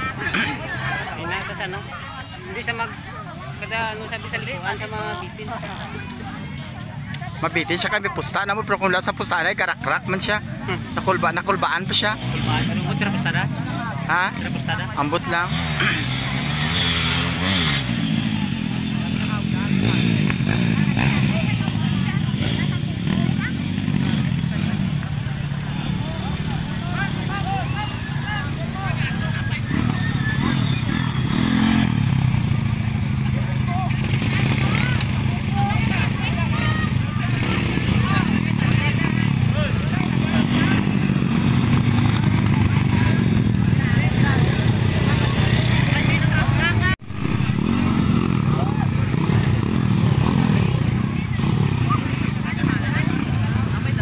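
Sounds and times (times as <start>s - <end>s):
dirt bike engines revving: 0.0s - 54.0s
spectators talking and calling out: 0.0s - 54.0s.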